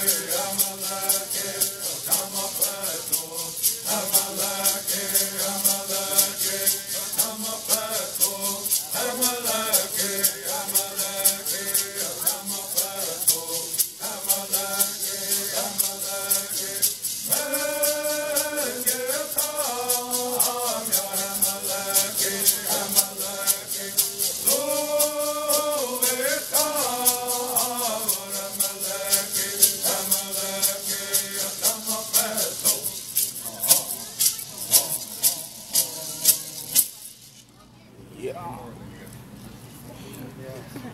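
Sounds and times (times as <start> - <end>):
group of voices singing: 0.0 - 37.1
shaken hand rattles: 0.0 - 37.6.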